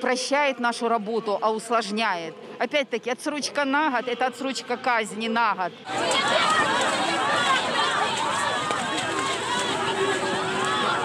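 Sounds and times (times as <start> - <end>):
crowd shouting: 5.8 - 11.0.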